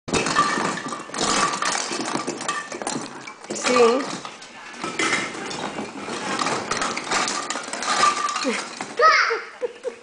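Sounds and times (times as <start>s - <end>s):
baubles clinking and rattling: 0.1s - 9.7s
woman speaking: 3.5s - 4.2s.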